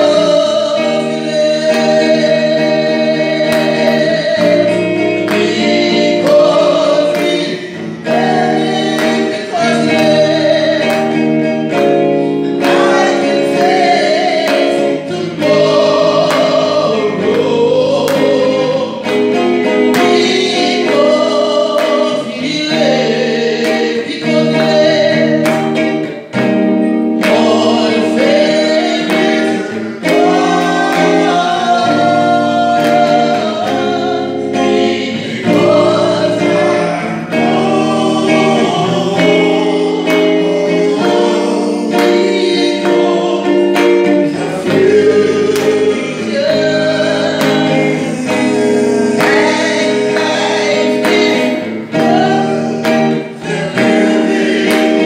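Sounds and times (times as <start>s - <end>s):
woman singing into a microphone: 0.0s - 25.9s, 27.2s - 55.0s
instrumental accompaniment with chords: 0.0s - 55.0s.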